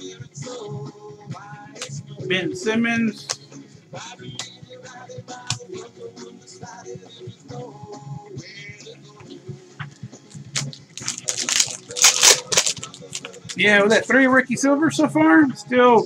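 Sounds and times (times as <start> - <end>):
quiet background music: 0.0 - 16.0
cards clicking: 10.3 - 13.6
plastic wrapper tearing and crinkling: 10.4 - 13.6.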